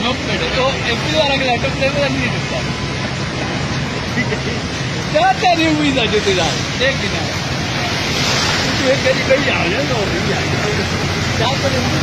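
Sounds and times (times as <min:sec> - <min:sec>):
floodwater rushing and sloshing: 0:00.0 - 0:12.0.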